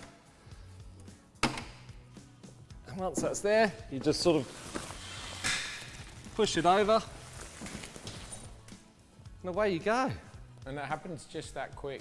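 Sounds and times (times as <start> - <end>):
tent canvas rustling: 4.2 - 8.6.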